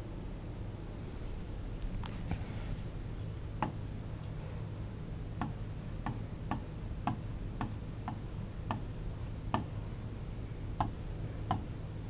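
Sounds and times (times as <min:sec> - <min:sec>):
low steady hum: 0:00.0 - 0:12.0
pen tapping on whiteboard: 0:03.6 - 0:03.8, 0:05.4 - 0:10.0, 0:10.8 - 0:11.8.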